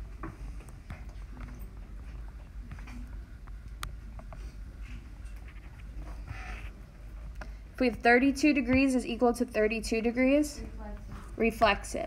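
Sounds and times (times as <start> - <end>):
low steady hum: 0.0 - 12.0
stylus tapping and scratching on screen: 0.2 - 6.8.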